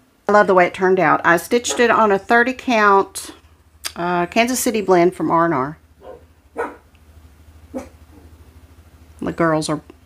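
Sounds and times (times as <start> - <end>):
low steady hum: 0.0 - 10.0
dog barking: 6.0 - 6.9, 7.7 - 8.3.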